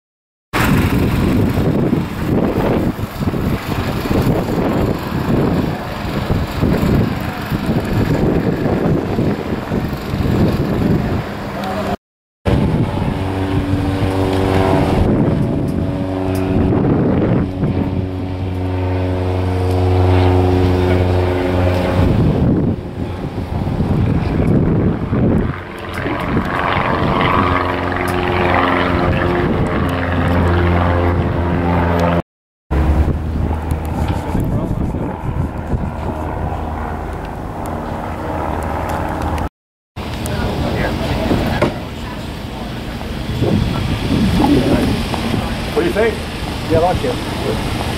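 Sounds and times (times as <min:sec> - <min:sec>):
outdoor show ambience: 0:00.5 - 0:47.9
light aircraft engine droning: 0:00.6 - 0:47.9.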